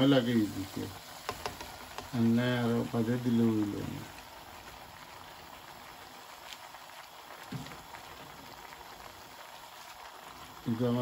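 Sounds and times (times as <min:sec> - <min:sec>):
food sizzling and bubbling in pan: 0:00.0 - 0:11.0.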